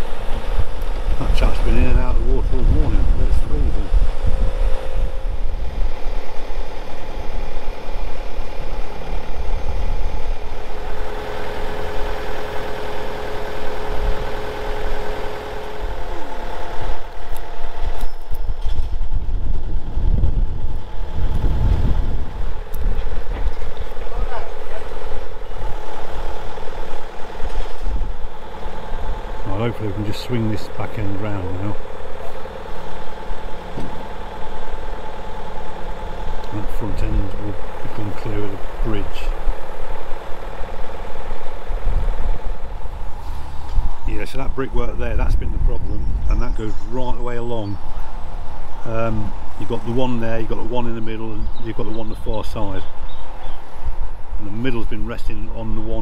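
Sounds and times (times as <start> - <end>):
crane engine running: 0.0 - 56.0
wind rumbling on microphone: 0.0 - 56.0.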